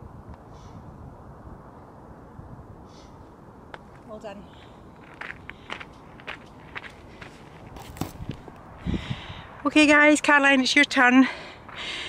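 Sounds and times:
footsteps on gravel: 3.8 - 8.6.

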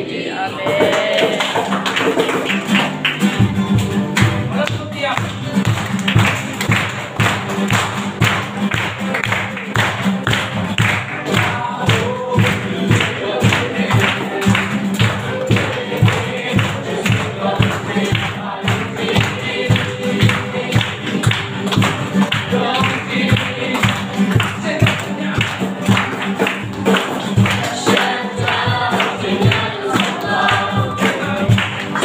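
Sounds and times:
person singing: 0.0 - 1.9, 11.2 - 26.2, 27.4 - 32.0
acoustic guitars strummed: 0.0 - 32.0
cajon beat: 0.5 - 32.0.

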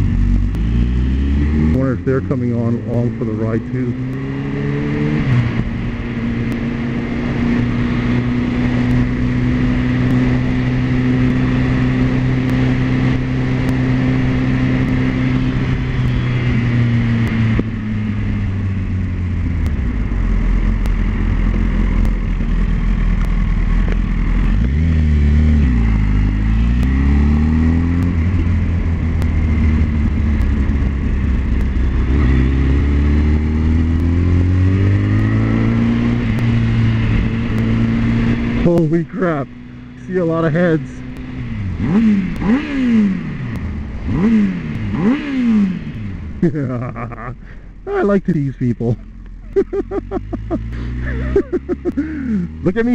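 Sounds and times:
motorcycle engine while riding: 0.0 - 52.9.

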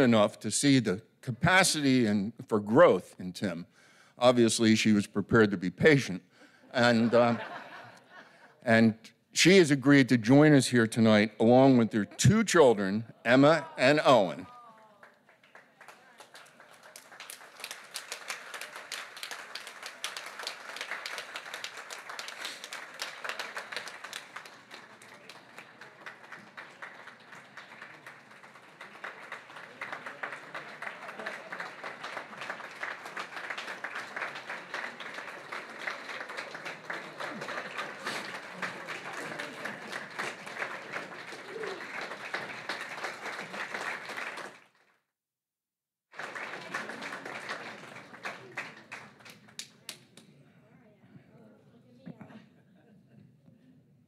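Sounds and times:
audience applauding: 13.3 - 44.9, 46.1 - 50.0.

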